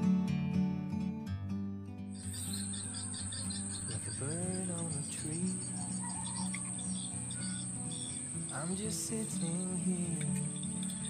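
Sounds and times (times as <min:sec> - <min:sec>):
guitar music: 0:00.0 - 0:11.0
bird calls: 0:02.1 - 0:11.0
insects droning: 0:02.1 - 0:11.0.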